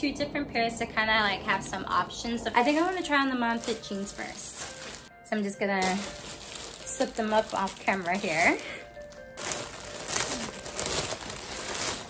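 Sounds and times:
plastic bag crinkling: 2.1 - 12.0.

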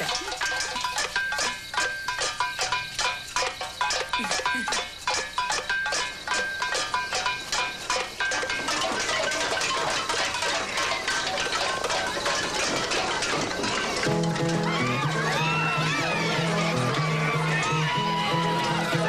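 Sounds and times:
metal pots banging: 0.0 - 19.0.

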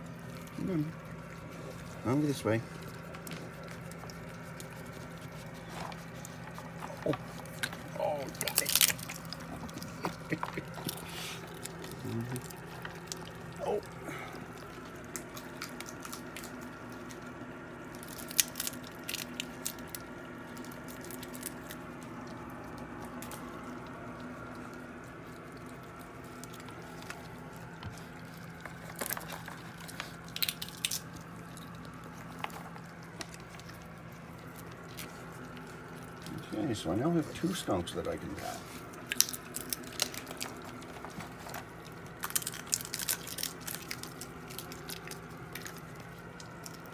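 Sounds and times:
animals crunching and chewing: 0.0 - 46.9
steady low hum: 0.0 - 46.9.

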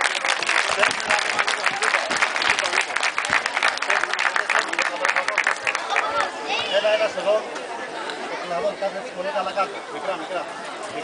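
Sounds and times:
audience applauding: 0.0 - 6.3.

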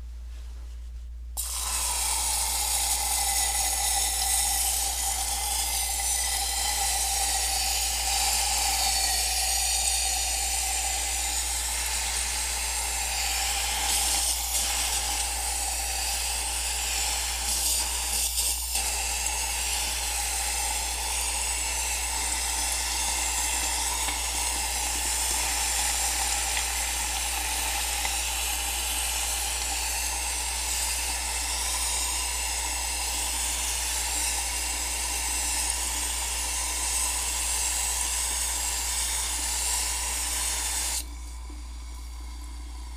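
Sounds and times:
propellant hissing and fizzing in water: 1.4 - 42.9.

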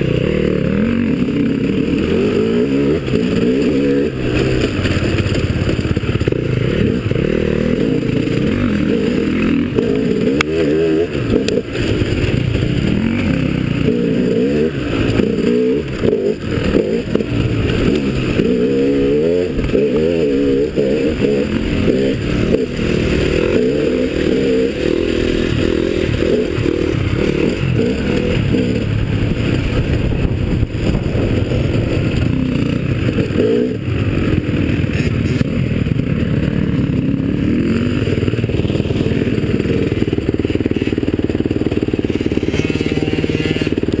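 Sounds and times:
bike rattling over bumps: 0.0 - 44.0
dirt bike engine revving: 0.0 - 44.0.

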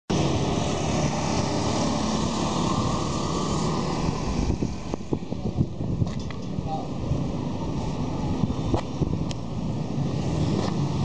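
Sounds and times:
motorcycles passing: 0.1 - 11.0
road traffic rushing: 0.1 - 11.0.

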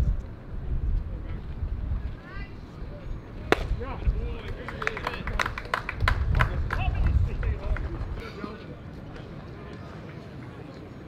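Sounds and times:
baseball impact crack: 3.4 - 5.2.

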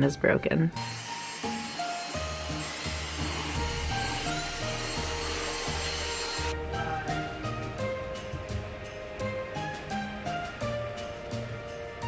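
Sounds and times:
stick vacuum cleaner running: 0.8 - 6.6.

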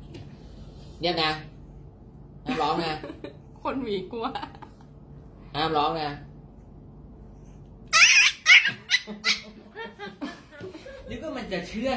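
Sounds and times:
puppy yelping and whimpering: 7.9 - 9.6.

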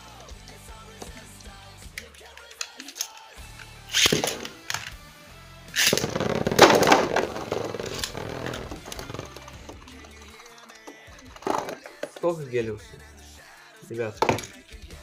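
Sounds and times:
background music: 0.0 - 15.0
spinning tops clashing and grinding: 3.9 - 5.0, 5.8 - 12.1
tops clattering: 4.0 - 4.9, 5.8 - 12.3, 14.2 - 14.6
top whirring on plastic floor: 5.9 - 9.8.

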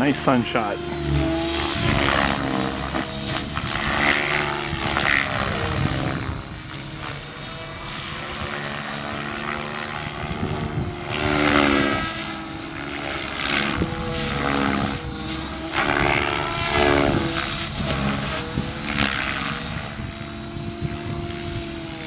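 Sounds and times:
model airplane motor whine: 0.0 - 22.0.

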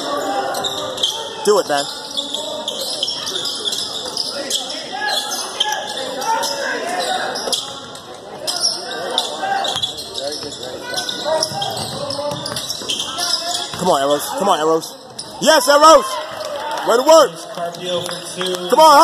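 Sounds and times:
crowd voices: 0.0 - 19.0.

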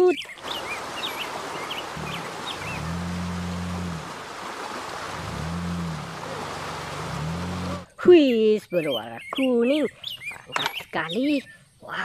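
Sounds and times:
birds chirping: 0.0 - 12.0
rushing stream water: 0.2 - 7.9
off-road vehicle engine revving: 1.9 - 4.2, 5.0 - 7.9.

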